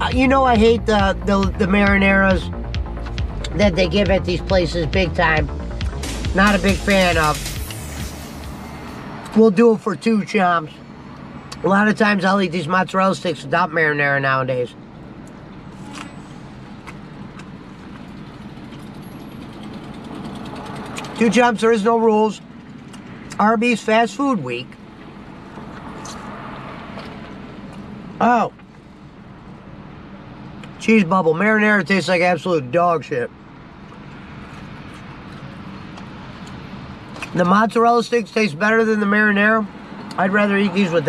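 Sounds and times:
low rumble inside car cabin: 0.0s - 10.6s
car engine idling: 0.0s - 13.9s, 14.8s - 30.6s.

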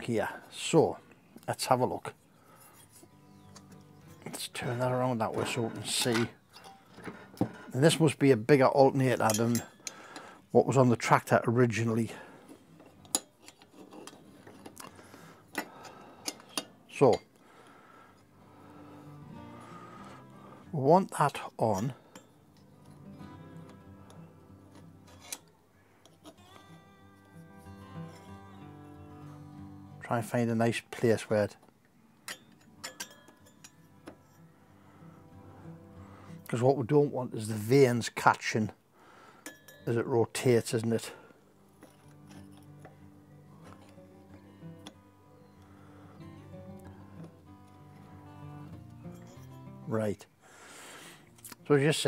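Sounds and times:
faint background music: 0.0s - 52.0s.

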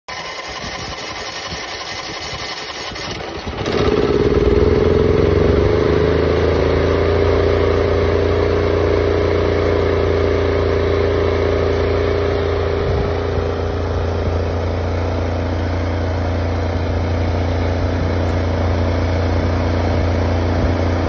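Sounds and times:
generator starting up: 0.0s - 21.0s.

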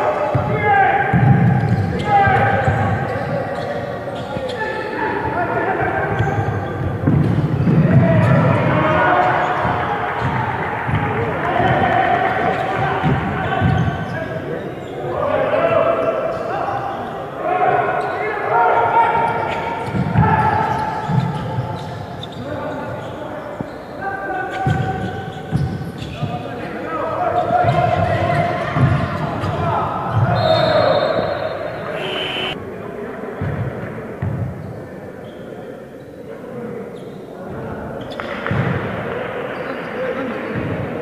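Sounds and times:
players shouting in gym: 0.0s - 23.2s, 26.3s - 32.6s
basketball bouncing on court: 0.3s - 3.0s, 6.1s - 8.5s, 9.5s - 11.9s, 25.5s - 26.3s, 27.6s - 30.4s.

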